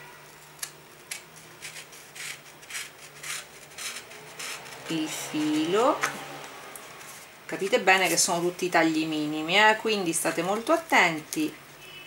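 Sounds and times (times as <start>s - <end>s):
utility knife cutting paper: 0.6s - 5.7s.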